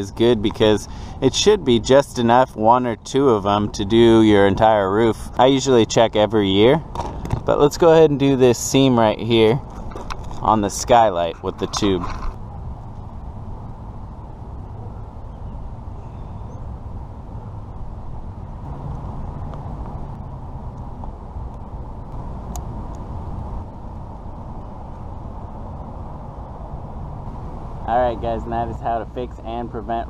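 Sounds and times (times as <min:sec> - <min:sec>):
low outdoor rumble: 0:00.0 - 0:30.0.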